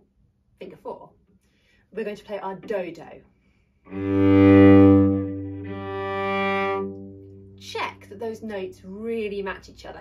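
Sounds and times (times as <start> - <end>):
cello bowing long notes: 3.9 - 7.6.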